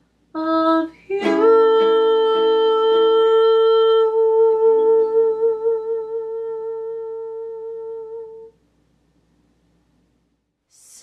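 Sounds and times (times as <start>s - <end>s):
woman singing a long note: 0.4s - 8.6s.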